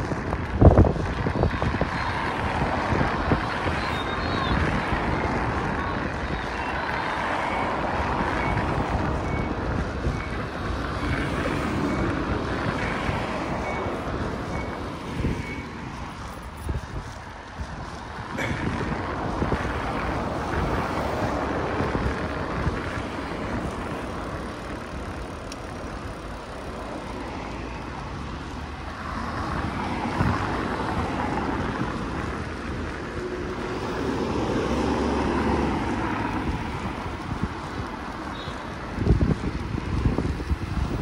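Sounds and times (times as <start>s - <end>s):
traffic passing: 0.0s - 41.0s
wind noise on microphone: 0.0s - 41.0s.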